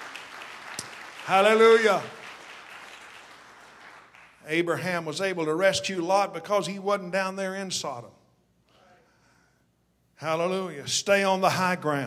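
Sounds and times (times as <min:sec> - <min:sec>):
faint applause: 0:00.0 - 0:04.4.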